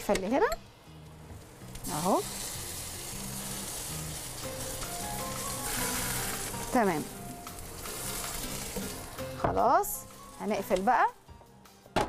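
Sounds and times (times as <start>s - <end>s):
background music: 0.0s - 12.0s
water sizzling on hot tray: 1.4s - 11.2s.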